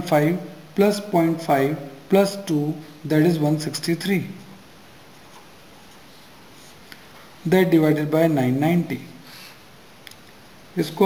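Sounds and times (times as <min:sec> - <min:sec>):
man speaking: 0:00.0 - 0:04.5, 0:07.4 - 0:09.2, 0:10.7 - 0:11.0.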